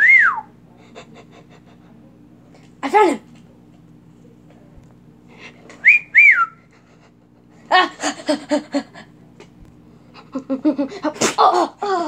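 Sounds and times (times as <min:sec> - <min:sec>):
person whistling: 0:00.0 - 0:00.5, 0:05.8 - 0:06.6.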